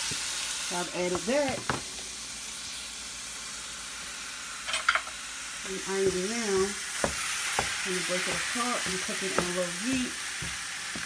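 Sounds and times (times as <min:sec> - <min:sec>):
vegetables and meat sizzling in a pan: 0:00.0 - 0:11.0.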